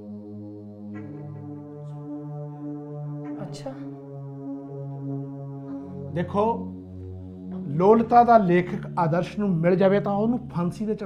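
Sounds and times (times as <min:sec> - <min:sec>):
brass-like drone film score: 0:00.0 - 0:11.0.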